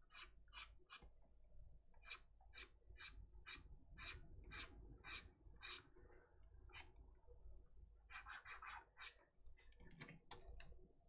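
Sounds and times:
stylus scratching on tablet: 0.0 - 1.0.

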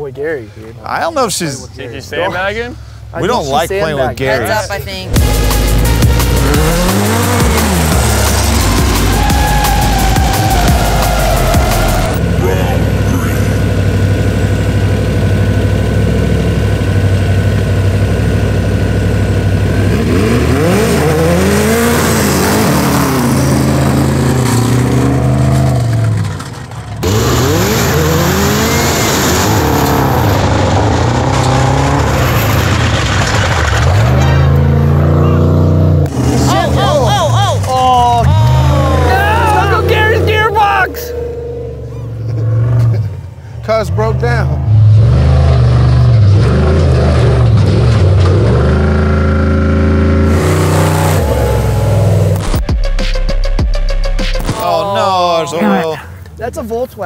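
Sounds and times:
race engines revving: 0.8 - 52.6.

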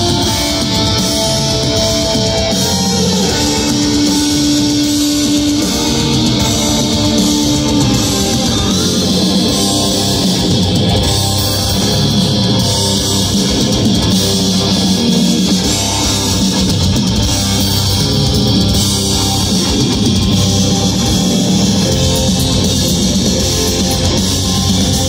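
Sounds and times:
metal band playing live: 0.0 - 25.0.

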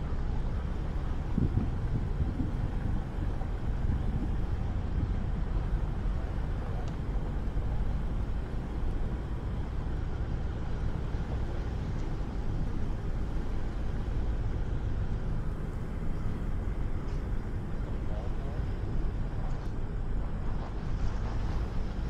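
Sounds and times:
car engine rumble: 0.0 - 22.0
road noise: 0.0 - 22.0.

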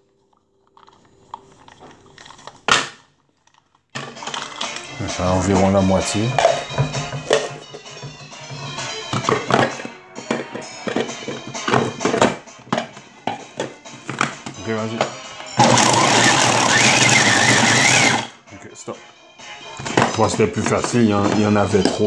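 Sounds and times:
background music: 4.0 - 22.0
electric food chopper running: 15.6 - 18.4.

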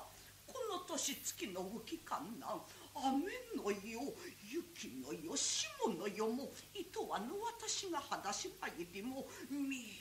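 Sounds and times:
woman chanting half-sung speech: 0.0 - 10.0.

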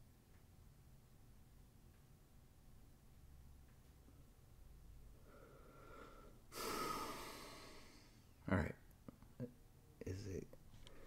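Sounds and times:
person breathing: 5.1 - 8.4, 10.8 - 11.0.

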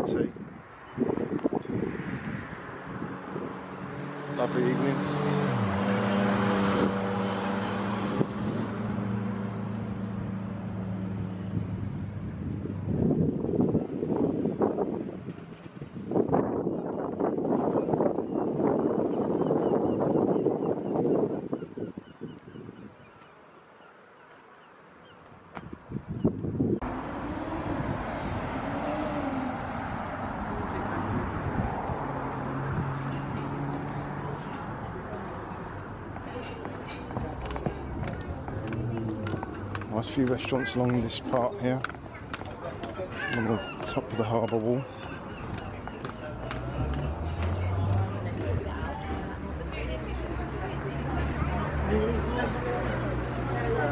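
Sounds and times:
wind on microphone: 0.0 - 4.2, 6.4 - 23.2, 25.3 - 36.1
passing traffic: 0.0 - 53.9
vehicle engine humming: 26.5 - 41.2.

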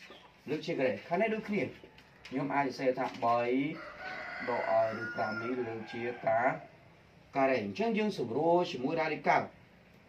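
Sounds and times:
man speaking: 0.4 - 3.8, 4.4 - 6.7, 7.3 - 9.6.

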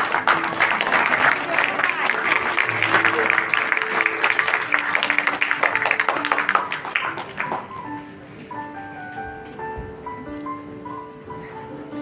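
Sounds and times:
audience clapping: 0.0 - 8.2
background music of held notes: 0.0 - 12.0.

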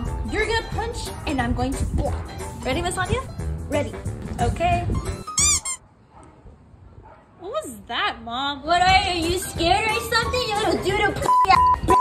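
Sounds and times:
high-pitched squeak: 5.2 - 5.8.

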